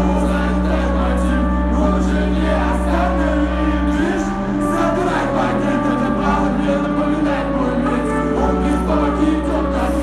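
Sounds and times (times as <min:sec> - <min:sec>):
crowd singing along: 0:00.0 - 0:10.0
live pop-rap concert music: 0:00.0 - 0:10.0.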